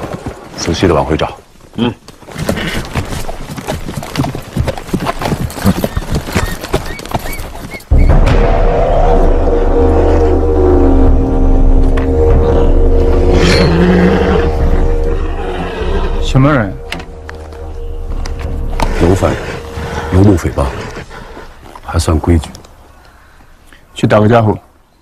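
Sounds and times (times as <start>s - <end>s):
horse hooves clopping on dirt: 0.0s - 8.0s, 16.8s - 23.6s
film score with deep drone: 7.9s - 22.2s.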